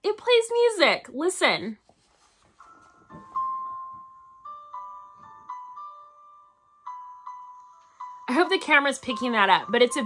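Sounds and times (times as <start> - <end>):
music box melody: 2.6 - 10.0.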